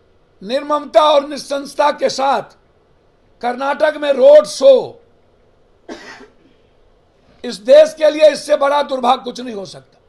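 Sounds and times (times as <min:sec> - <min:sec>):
person speaking: 0:00.4 - 0:02.6, 0:03.4 - 0:05.0, 0:07.4 - 0:09.9
person coughing: 0:05.9 - 0:06.7.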